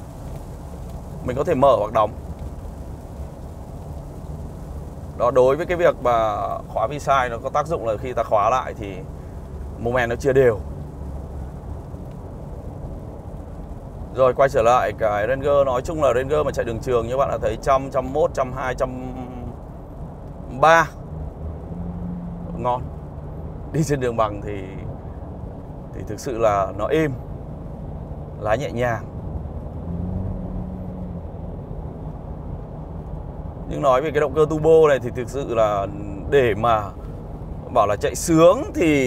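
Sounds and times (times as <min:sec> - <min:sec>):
road and engine drone in car cabin: 0:00.0 - 0:39.0.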